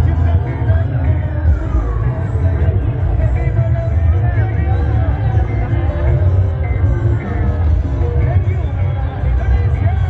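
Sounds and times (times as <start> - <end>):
dance music over loudspeakers: 0.0 - 10.0.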